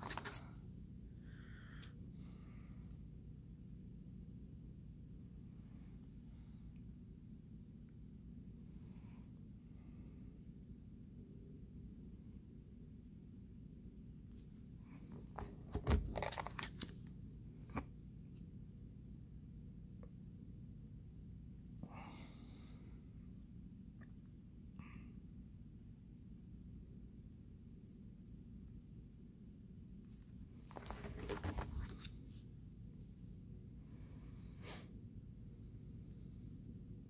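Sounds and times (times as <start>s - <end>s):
plastic page crinkling: 0.0s - 0.5s, 15.8s - 17.1s, 30.7s - 32.2s
low thump of page: 15.2s - 16.5s.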